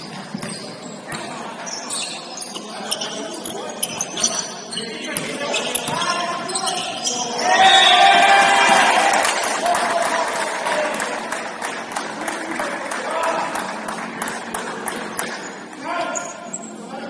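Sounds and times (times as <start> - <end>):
sneakers squeaking: 0.0 - 8.2, 14.0 - 17.0.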